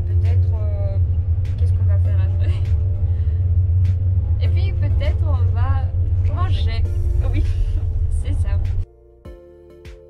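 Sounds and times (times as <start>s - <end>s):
woman's voice: 0.0s - 2.9s, 4.4s - 8.8s
train low rumble: 0.0s - 8.9s
background music: 0.0s - 10.0s.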